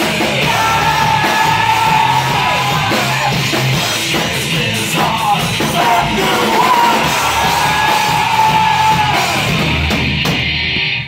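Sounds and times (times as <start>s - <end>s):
punk rock band playing: 0.0s - 11.0s
singer yelling into microphone: 5.6s - 9.6s.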